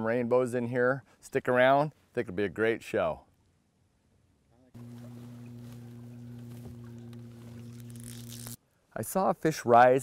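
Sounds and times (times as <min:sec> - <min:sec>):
small boat motor humming: 0:04.8 - 0:08.6.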